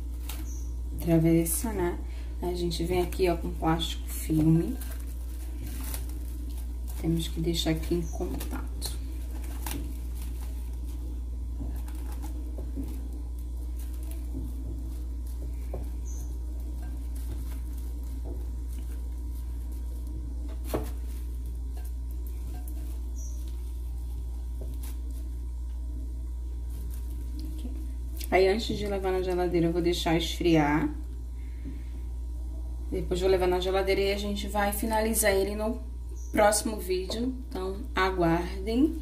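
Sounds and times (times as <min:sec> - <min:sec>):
cling film crinkling: 0:00.0 - 0:01.8, 0:02.6 - 0:29.4
low hum: 0:00.0 - 0:39.0.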